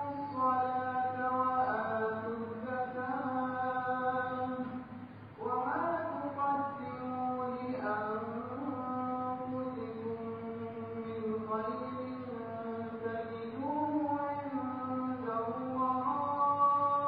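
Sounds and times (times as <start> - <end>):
man chanting recitation: 0.0 - 4.8, 5.4 - 17.0.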